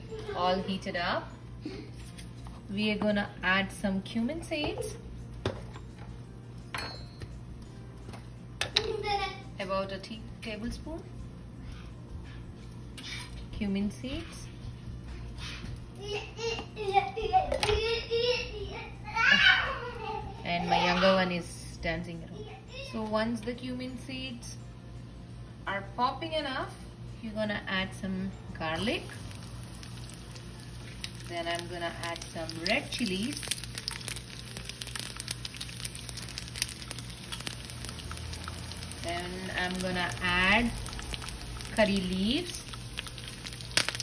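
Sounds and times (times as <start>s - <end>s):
young child's high-pitched voice: 16.0s - 21.2s, 22.3s - 23.1s
ghee sizzling in a pan: 28.8s - 44.0s.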